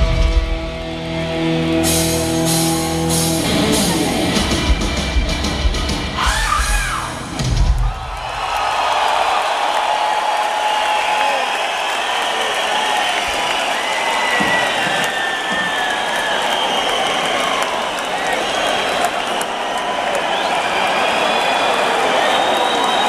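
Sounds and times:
hard rock band playing: 0:00.0 - 0:07.9
crowd cheering and applauding: 0:03.4 - 0:23.0.

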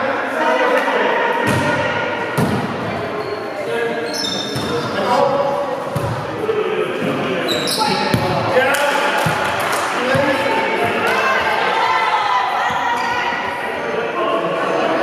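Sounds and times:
players chattering and calling: 0:00.0 - 0:15.0
volleyball hits echoing: 0:01.4 - 0:03.0, 0:05.9 - 0:06.4, 0:07.9 - 0:11.6
high shoe squeaks: 0:03.2 - 0:05.0, 0:07.5 - 0:08.1.

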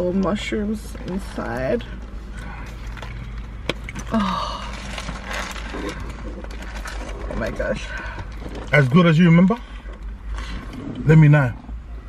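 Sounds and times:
low car cabin hum: 0:00.0 - 0:12.0
paper wrapper handling noise: 0:02.7 - 0:08.9.

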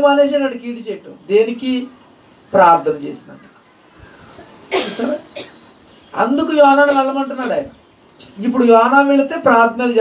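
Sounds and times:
man coughing: 0:04.7 - 0:05.6.

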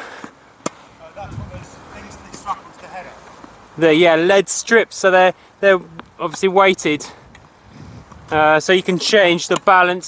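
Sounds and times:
tennis ball struck by racket: 0:00.6 - 0:00.9.

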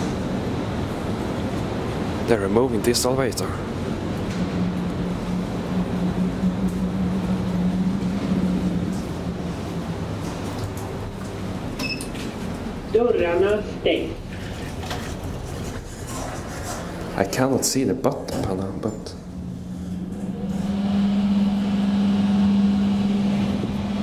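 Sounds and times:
low machine hum: 0:00.0 - 0:24.0.

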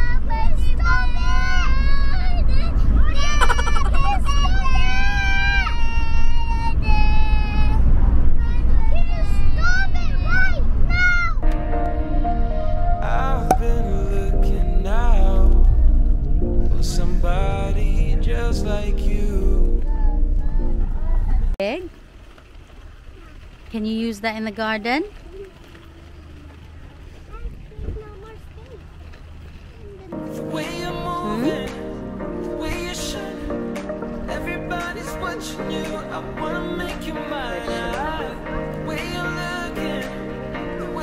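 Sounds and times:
wind rumbling on microphone: 0:00.0 - 0:23.9, 0:25.0 - 0:30.1
faint voices: 0:23.0 - 0:30.3.

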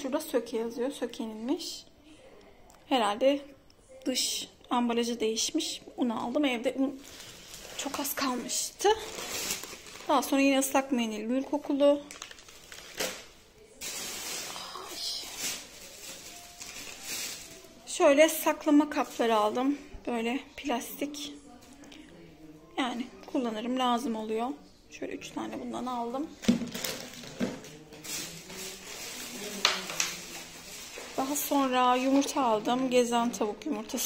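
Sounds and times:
plastic bags rustling and crinkling: 0:06.2 - 0:19.8, 0:26.3 - 0:34.0.

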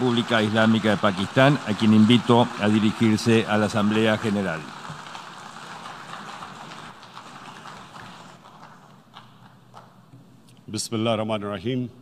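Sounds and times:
audience applause: 0:00.0 - 0:09.0.

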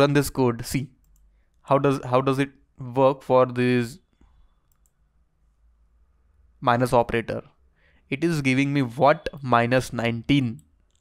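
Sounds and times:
faint computer mouse clicks: 0:04.6 - 0:05.0.

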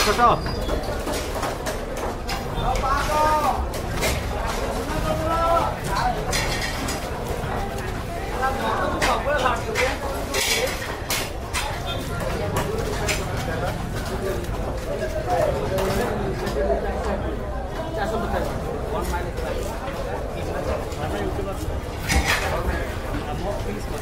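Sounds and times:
busy market hubbub: 0:00.0 - 0:24.0.

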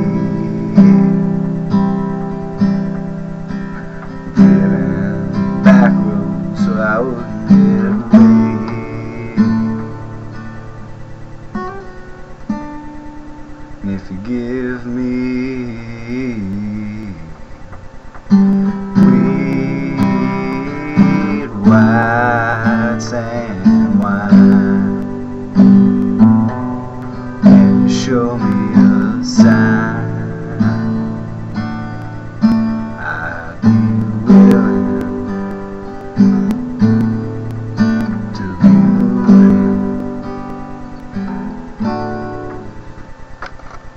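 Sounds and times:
acoustic guitar strumming: 0:00.0 - 0:43.9.

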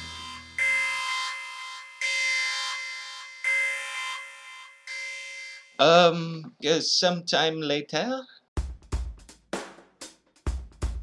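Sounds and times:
synthesized alarm tone: 0:00.0 - 0:05.9.

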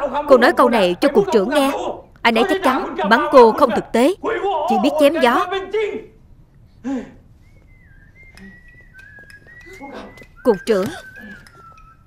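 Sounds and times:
person whistling a tune: 0:07.4 - 0:12.0.

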